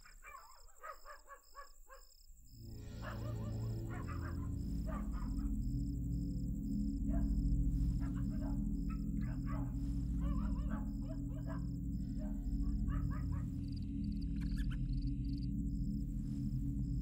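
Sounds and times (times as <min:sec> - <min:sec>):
animal calls: 0:00.0 - 0:05.8, 0:07.0 - 0:15.2
low music drone: 0:02.6 - 0:17.0.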